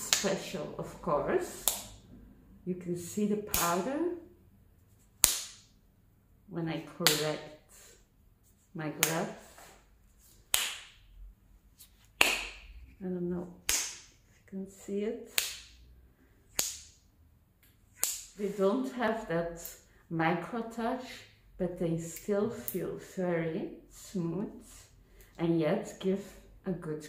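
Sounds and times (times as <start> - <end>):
latex glove snapping: 5.2 - 5.7, 13.6 - 14.2, 16.5 - 17.0, 17.9 - 18.4.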